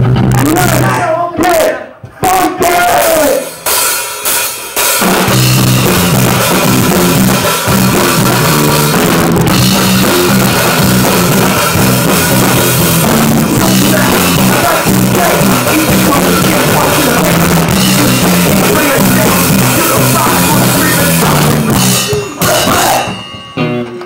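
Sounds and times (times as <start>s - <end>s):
live rock band playing: 0.0s - 1.2s, 2.6s - 24.0s
drum hits: 3.1s - 24.0s.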